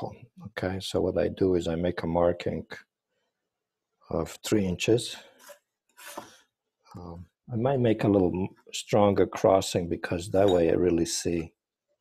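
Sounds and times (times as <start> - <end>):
pencil scratching paper: 5.4 - 6.4.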